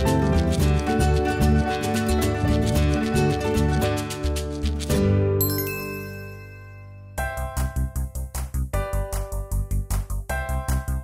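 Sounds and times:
bright tinkling chime: 0:05.4 - 0:07.2.

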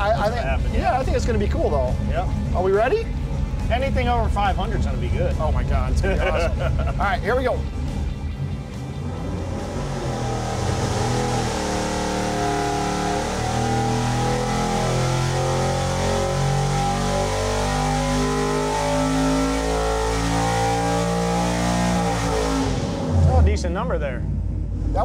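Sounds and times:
engine revving at full throttle: 0:01.8 - 0:25.0.

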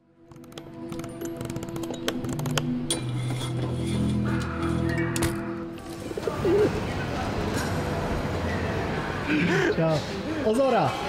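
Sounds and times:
steady background noise: 0:00.3 - 0:11.0
pigeon cooing: 0:06.0 - 0:06.9.

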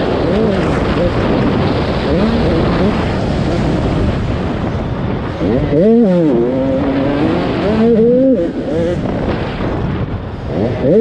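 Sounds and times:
motocross bike engine revving: 0:00.0 - 0:11.0
wind rumble on camera: 0:00.0 - 0:11.0.

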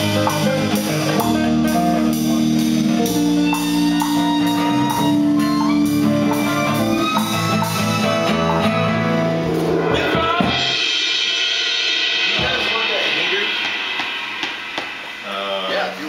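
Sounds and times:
drum kit with cymbals: 0:00.0 - 0:16.0
strings: 0:00.0 - 0:16.0.

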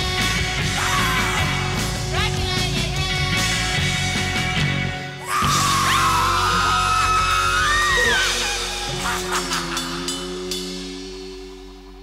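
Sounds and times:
rock band playing: 0:00.0 - 0:12.0
high wavering yell: 0:05.2 - 0:11.3.

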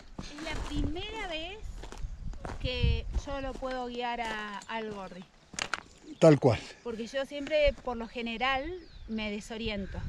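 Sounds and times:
footsteps on stony trail: 0:00.0 - 0:06.4.

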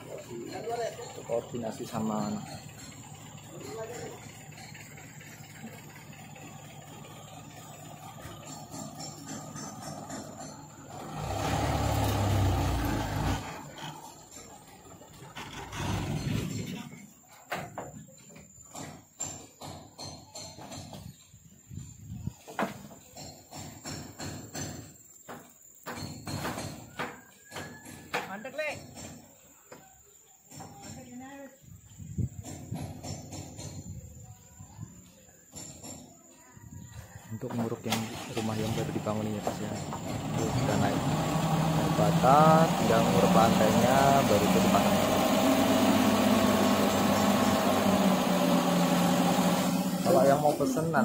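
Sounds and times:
metallic knocks and clanks: 0:00.0 - 0:06.6, 0:08.0 - 0:11.1, 0:13.5 - 0:21.3, 0:22.5 - 0:29.4, 0:32.3 - 0:34.0, 0:38.9 - 0:40.8
dump truck engine rumbling: 0:00.0 - 0:17.2, 0:37.4 - 0:51.0.

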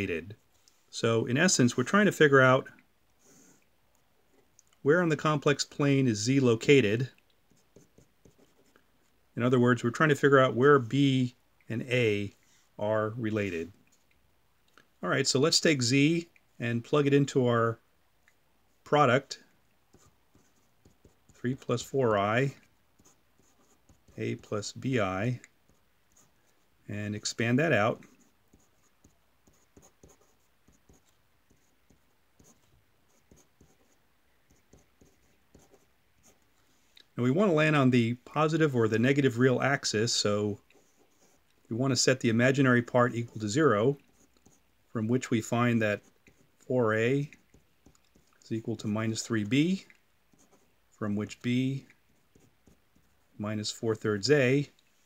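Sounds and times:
pen scratching on paper: 0:07.5 - 0:08.8, 0:19.9 - 0:21.9, 0:23.0 - 0:24.5, 0:27.6 - 0:36.5, 0:40.7 - 0:41.4, 0:43.2 - 0:44.6, 0:46.0 - 0:48.2, 0:50.3 - 0:50.7, 0:52.1 - 0:53.2.

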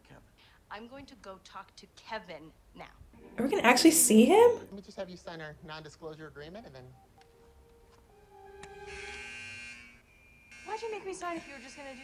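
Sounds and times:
electronic buzzer tone: 0:08.7 - 0:12.0.

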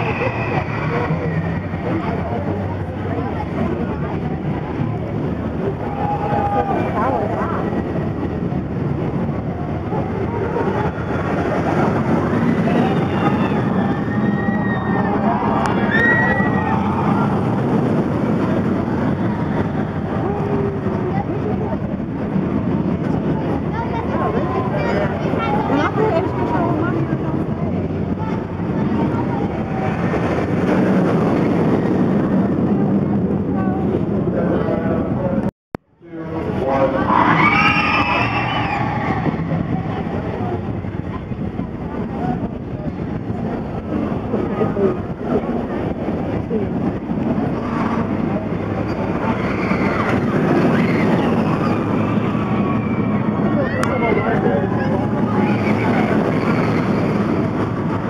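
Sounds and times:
crowd chatter: 0:00.0 - 0:58.0
roller coaster rumbling on track: 0:00.0 - 0:58.0.

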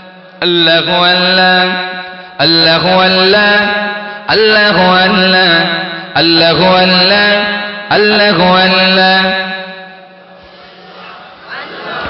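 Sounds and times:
man chanting amplified: 0:00.0 - 0:11.4.

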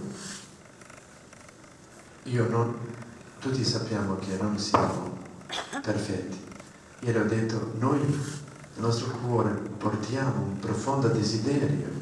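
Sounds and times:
background hiss: 0:00.0 - 0:12.0
man talking: 0:02.2 - 0:05.2, 0:05.8 - 0:12.0.

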